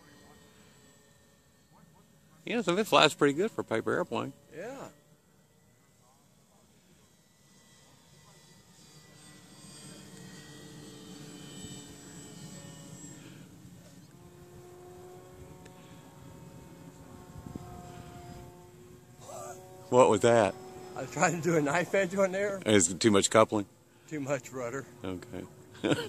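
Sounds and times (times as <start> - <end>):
model airplane motor droning: 0.0 - 26.0.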